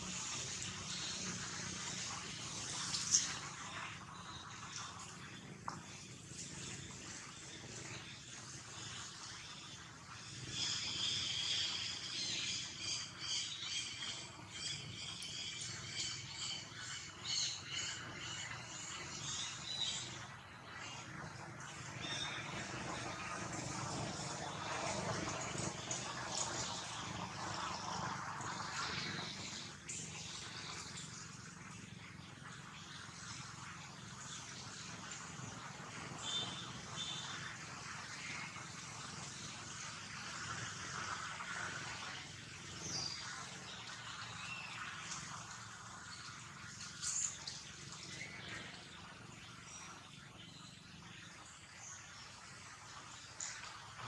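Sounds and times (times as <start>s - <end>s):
faint forest background din: 0.0s - 54.0s.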